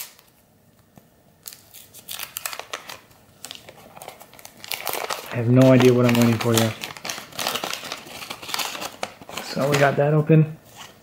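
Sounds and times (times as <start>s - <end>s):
wax paper tearing and crinkling: 1.5s - 10.0s.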